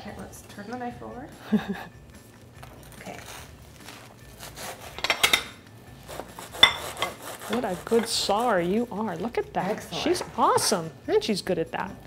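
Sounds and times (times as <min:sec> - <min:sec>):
knife sawing through toast: 0:03.2 - 0:05.1, 0:06.0 - 0:08.6.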